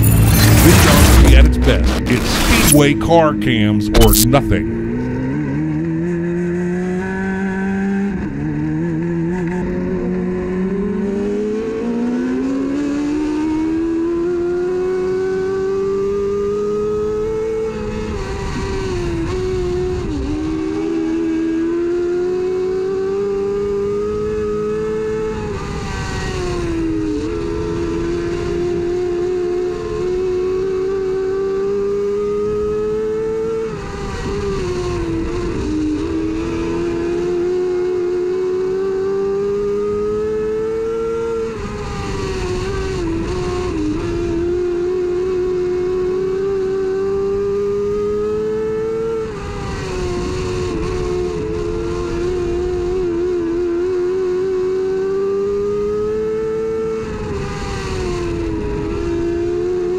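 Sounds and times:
race car engine running hard: 0:00.0 - 0:59.9.

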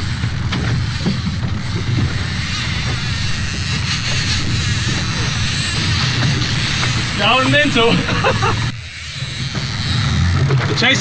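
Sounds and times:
outboard motor running: 0:00.0 - 0:11.0
man laughing: 0:07.2 - 0:08.7.

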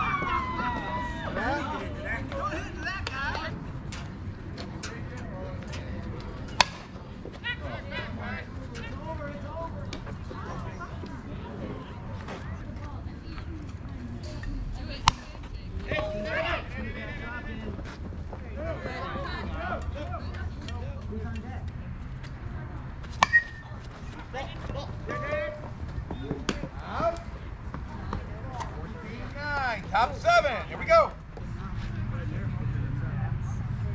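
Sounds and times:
players shouting: 0:00.0 - 0:03.6
bat hitting ball: 0:06.5 - 0:07.0, 0:15.0 - 0:15.4, 0:23.2 - 0:23.7.

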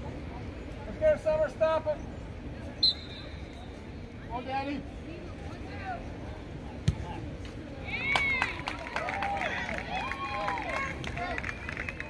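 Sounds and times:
scattered clapping: 0:08.1 - 0:12.0.

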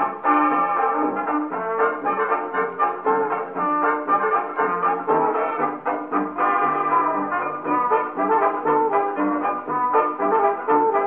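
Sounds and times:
brass-led fox trot on gramophone: 0:00.0 - 0:11.0.

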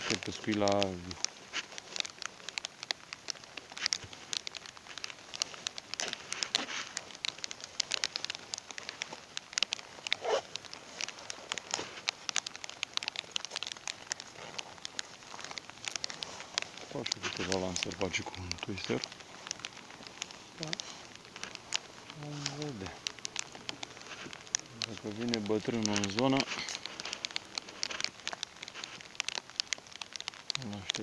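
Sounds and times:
zipper and velcro clicks: 0:10.1 - 0:10.6.

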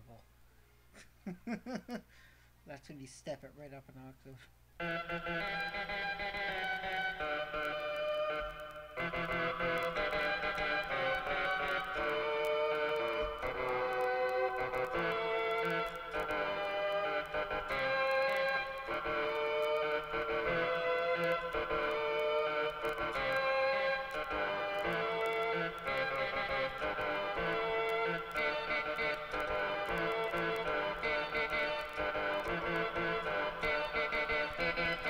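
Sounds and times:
keyboard playing chords: 0:04.8 - 0:35.0
faint clicks: 0:05.2 - 0:35.0.

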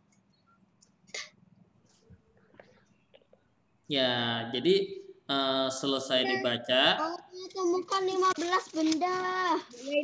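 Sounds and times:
man speaking: 0:03.9 - 0:07.4.

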